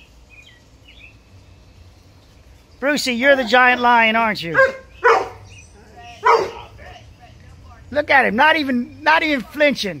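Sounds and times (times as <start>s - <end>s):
dog barking: 4.5s - 5.5s, 6.2s - 6.8s.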